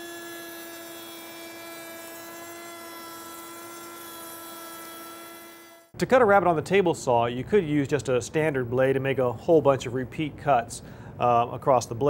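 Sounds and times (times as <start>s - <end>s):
router high-pitched whine: 0.0s - 5.9s.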